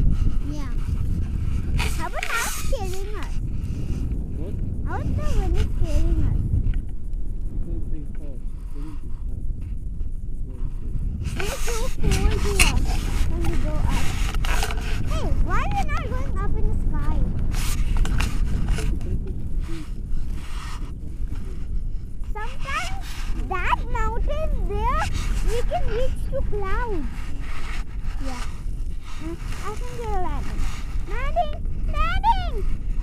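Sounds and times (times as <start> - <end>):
wind buffeting microphone: 0.0 - 33.0
person making sliding wordless sounds: 1.8 - 3.3, 11.3 - 16.0, 22.4 - 32.6.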